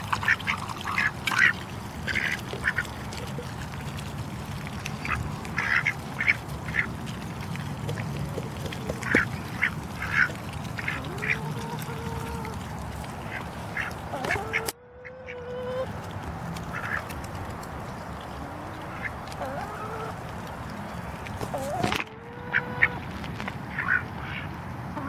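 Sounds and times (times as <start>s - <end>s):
ducks quacking: 0.1s - 3.5s, 5.0s - 6.9s, 9.0s - 12.6s, 13.2s - 15.9s, 16.6s - 17.1s, 18.4s - 20.2s, 21.4s - 23.1s, 23.7s - 25.0s.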